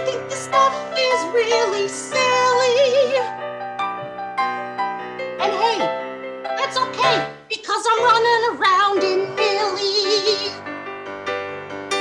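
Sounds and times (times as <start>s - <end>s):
woman singing with vibrato: 0.0s - 3.3s, 6.6s - 10.6s
piano chords: 0.0s - 12.0s.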